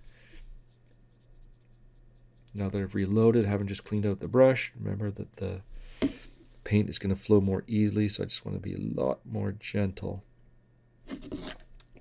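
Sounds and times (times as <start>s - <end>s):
paintbrush brushing on palette: 0.0s - 3.5s
low steady hum: 0.0s - 12.0s.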